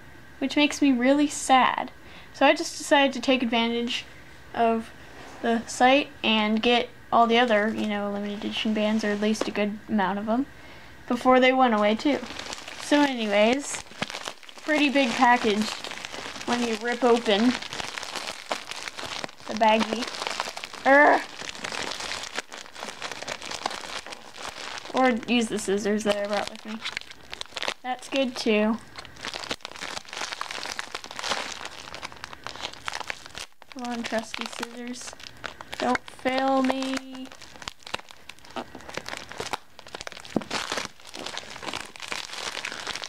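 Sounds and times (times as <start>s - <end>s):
plastic bag crinkling: 11.6s - 43.0s.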